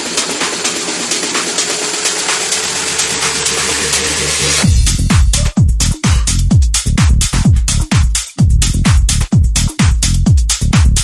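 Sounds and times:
bass: 0.0s - 11.0s.

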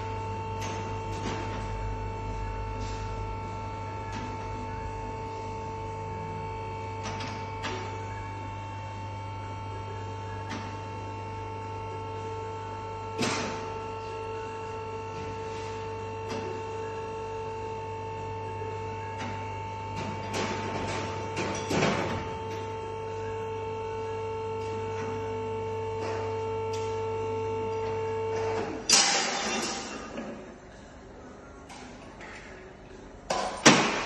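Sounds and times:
electrical hum: 0.0s - 34.0s.

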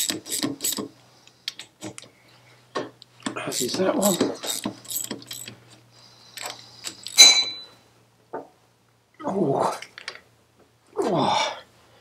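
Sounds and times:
ratchet spanner ticking: 3.5s - 5.5s.

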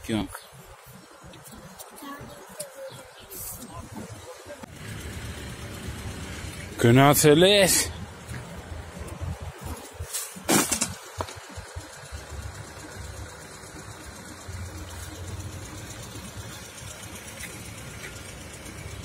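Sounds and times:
outdoor background rumble: 0.6s - 19.0s.

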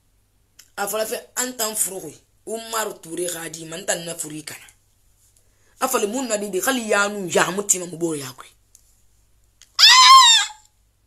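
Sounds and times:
woman squealing: 9.8s - 10.6s.

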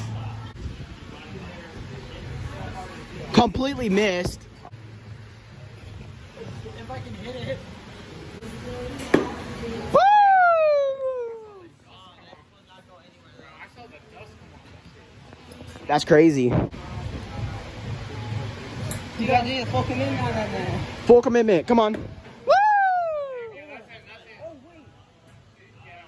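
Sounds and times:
faint chatter of voices: 0.0s - 3.4s, 16.7s - 21.0s
person shouting woo: 9.9s - 11.7s, 22.4s - 23.6s.

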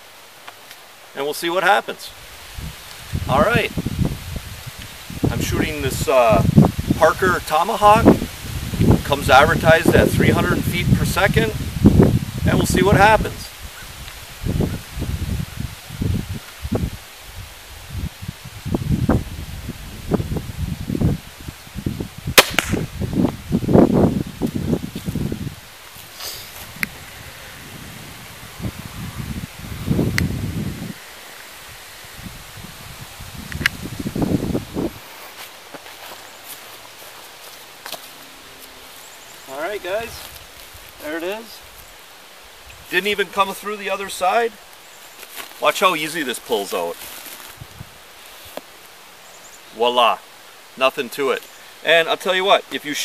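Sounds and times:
wind rumbling on microphone: 2.1s - 35.2s, 47.4s - 48.1s
microphone handling noise: 17.9s - 31.0s, 32.2s - 36.1s
crossbow firing snap: 22.4s - 23.0s.

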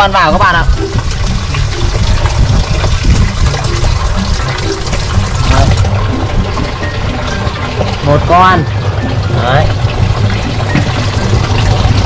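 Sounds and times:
water pouring into fish tank: 0.0s - 12.0s.

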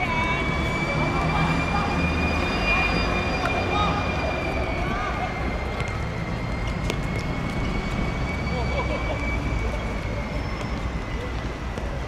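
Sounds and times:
high-pitched whine: 0.0s - 12.0s
traffic rumble: 0.0s - 12.0s.

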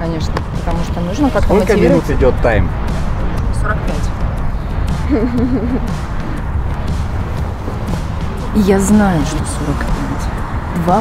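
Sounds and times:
person speaking: 1.4s - 2.2s.

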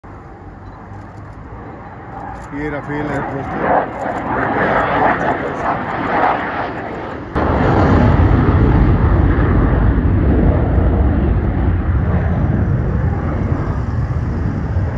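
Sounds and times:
fighter jet roar: 0.1s - 14.9s.

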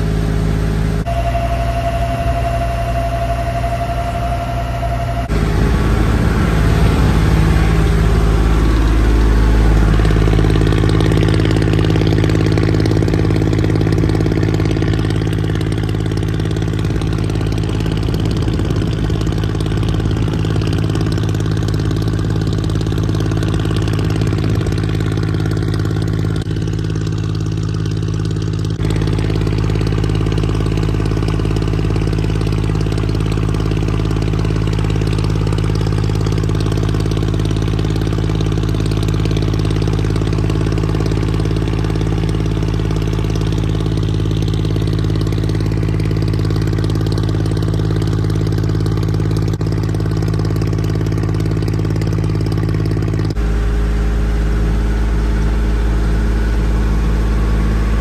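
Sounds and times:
boat engine low hum: 0.0s - 58.0s.

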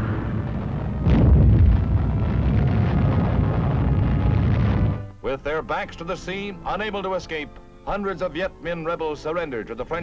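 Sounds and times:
bomb exploding with deep rumble: 0.0s - 5.1s.

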